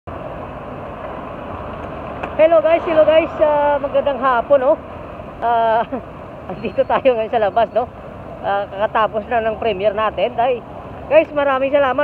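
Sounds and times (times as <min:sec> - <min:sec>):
bus engine close by: 0:00.1 - 0:12.0
city street traffic: 0:00.1 - 0:12.0.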